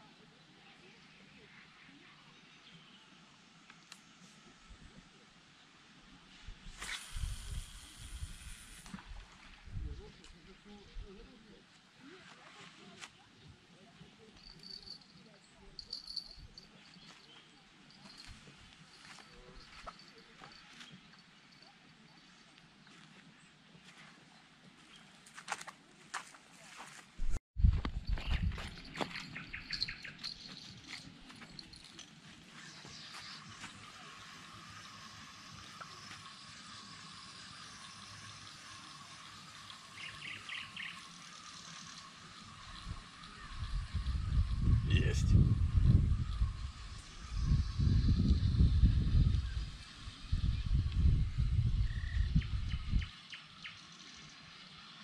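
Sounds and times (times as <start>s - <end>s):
small birds chirping: 28.0s - 55.0s
spinning reel whirring: 33.2s - 52.5s.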